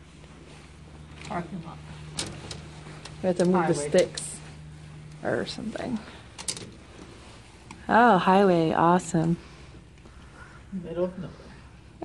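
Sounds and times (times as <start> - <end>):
steady low hum: 0.0 - 12.0
curtains drawn along rod: 0.2 - 7.7.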